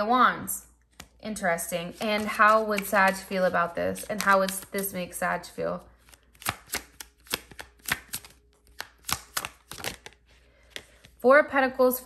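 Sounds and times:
cards being shuffled: 1.8s - 5.0s, 6.0s - 11.2s.

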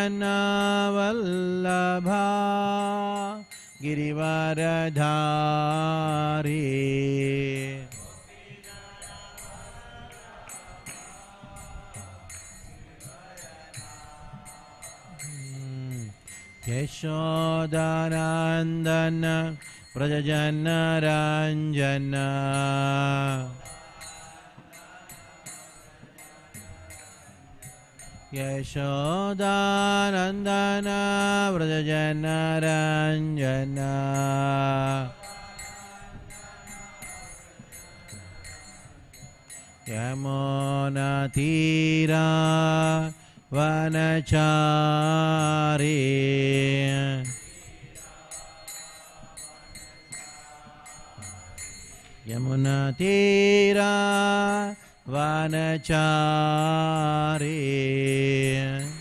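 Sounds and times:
man chanting a prayer: 0.0s - 24.6s, 28.3s - 38.6s, 39.8s - 47.9s, 52.3s - 59.0s
small hand cymbals jingling: 0.0s - 59.0s.

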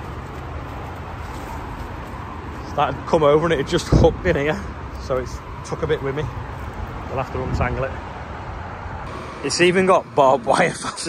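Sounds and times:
engine droning steadily: 0.0s - 11.0s.

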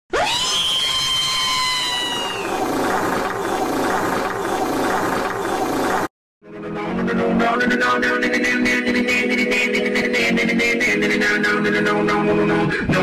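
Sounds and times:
high motor-like whine: 1.9s - 6.1s.

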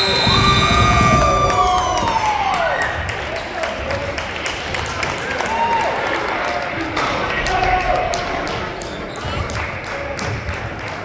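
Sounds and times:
crowd cheering and shouting: 0.0s - 3.4s, 5.0s - 8.6s.

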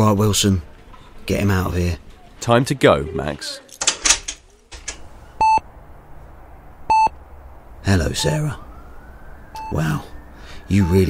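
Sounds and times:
patient monitor beeping: 5.4s - 5.6s, 6.9s - 7.2s, 8.1s - 8.7s, 9.6s - 10.1s, 10.7s - 11.0s.

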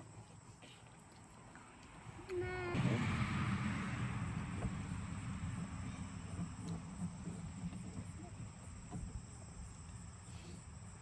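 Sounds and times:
low rumble: 2.5s - 9.7s
crickets trilling: 3.0s - 11.0s.

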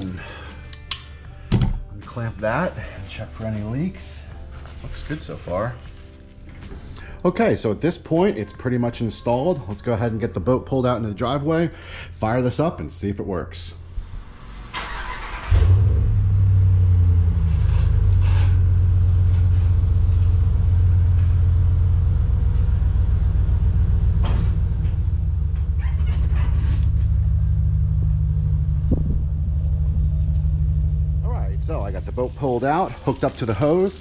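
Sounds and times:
pickup truck engine running: 15.0s - 33.8s.

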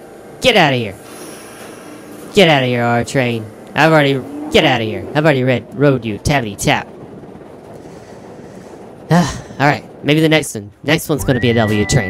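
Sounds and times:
subway train rolling past: 0.0s - 12.0s.

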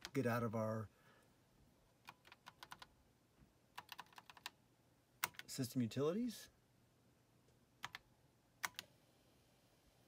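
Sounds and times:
keyboard keys tapping: 2.1s - 2.9s, 3.8s - 4.6s.

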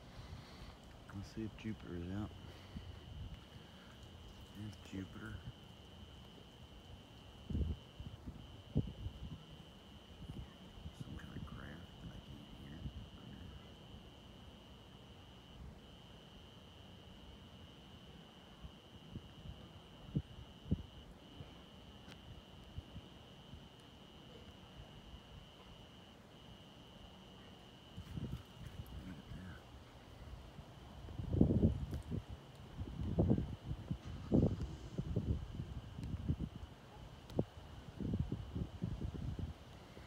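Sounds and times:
cricket trilling: 0.0s - 40.0s.

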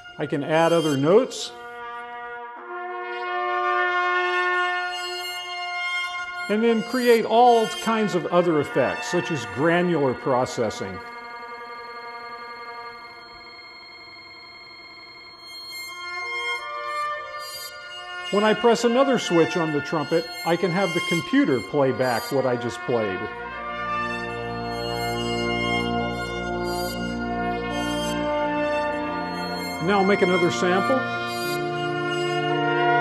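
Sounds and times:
processed trumpet drone: 0.0s - 33.0s.

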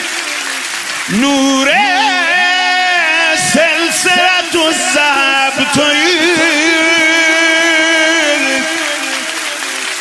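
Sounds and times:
man singing a long note: 1.0s - 10.0s.

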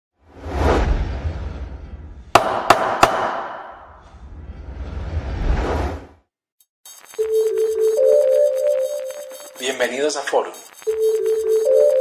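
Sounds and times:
whoosh: 0.2s - 2.4s, 3.5s - 6.3s
sharp hits ringing out: 2.4s - 3.9s.

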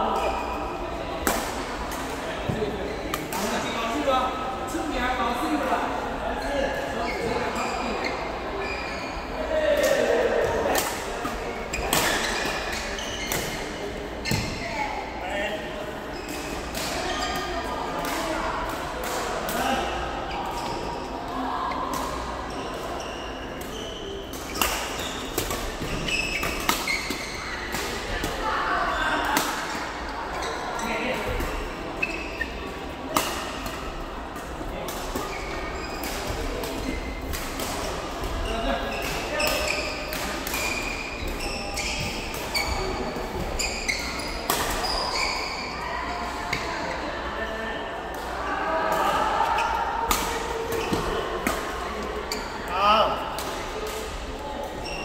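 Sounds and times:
chatter of voices: 0.0s - 26.0s, 26.8s - 55.0s.

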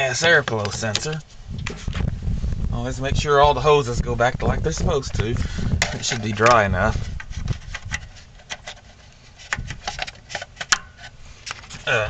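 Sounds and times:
hoses and connectors clicking: 0.4s - 1.7s.

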